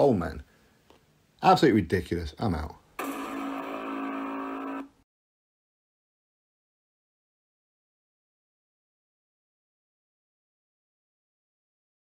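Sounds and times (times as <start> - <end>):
steady held electronic note: 3.0 - 5.0.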